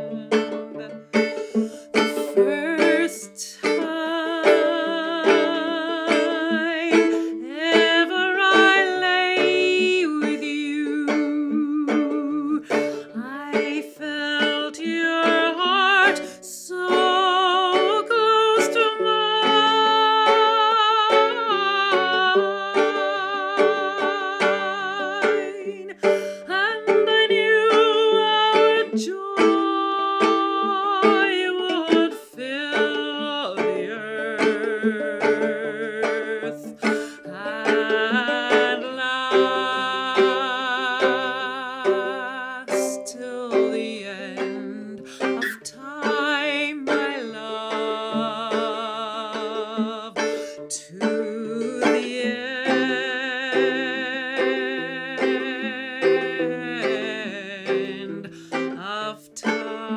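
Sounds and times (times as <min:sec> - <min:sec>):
fingerpicked banjo: 0:00.0 - 0:59.9
woman singing with vibrato: 0:00.0 - 0:59.9.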